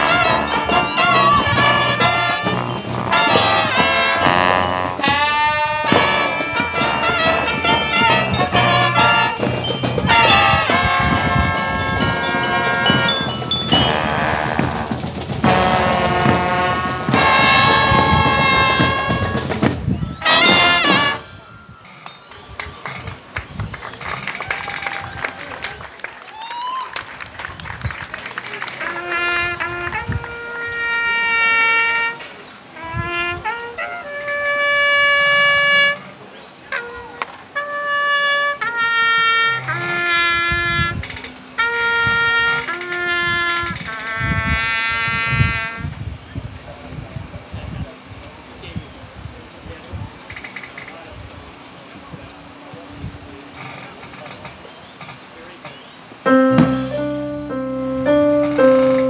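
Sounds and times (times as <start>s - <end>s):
brass section sustained chord: 0.0s - 9.4s, 10.1s - 13.2s, 13.8s - 19.5s, 20.2s - 21.4s, 56.3s - 59.0s
drum strokes: 0.0s - 22.4s, 56.3s - 59.0s.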